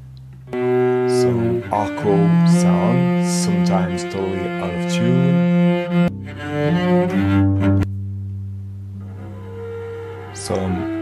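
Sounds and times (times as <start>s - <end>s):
bowed cello notes: 0.0s - 11.0s.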